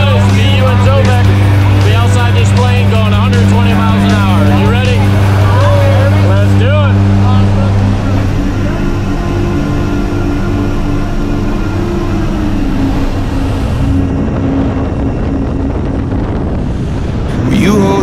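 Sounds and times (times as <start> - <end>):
voices: 0.0 - 14.1, 17.3 - 18.0
airplane engines droning: 0.0 - 18.0
wind rushing: 0.0 - 18.0.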